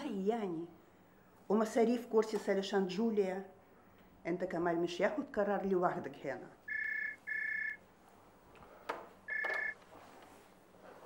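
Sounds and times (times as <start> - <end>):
telephone ring tone: 6.7 - 7.8, 9.3 - 9.8.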